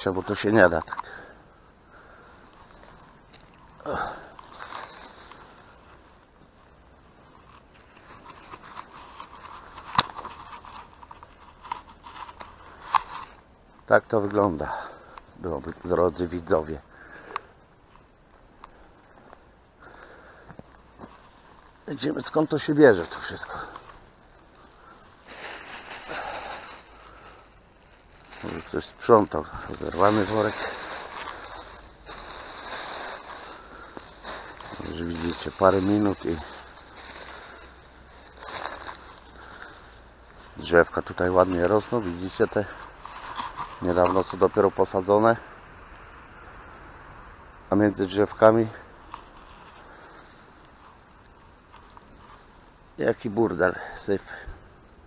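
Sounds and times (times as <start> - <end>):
small crackles: 0.0 - 46.1, 47.8 - 55.0
plastic bag rustling: 2.0 - 45.1, 48.0 - 53.6
footsteps through dry grass: 2.0 - 45.2, 48.1 - 54.0.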